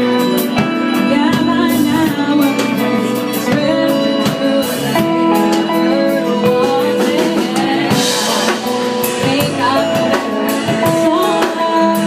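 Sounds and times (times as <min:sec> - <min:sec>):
drums: 0:00.0 - 0:12.0
pedal steel guitar: 0:00.0 - 0:12.0
woman singing: 0:00.0 - 0:12.0.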